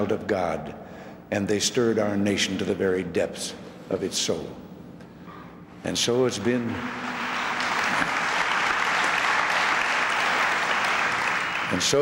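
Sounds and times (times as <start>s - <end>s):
large audience applauding: 6.6s - 12.0s.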